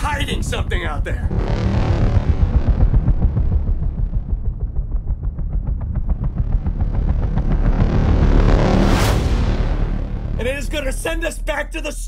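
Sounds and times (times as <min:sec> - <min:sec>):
deep heavy rumble with pulsing: 0:00.0 - 0:11.8.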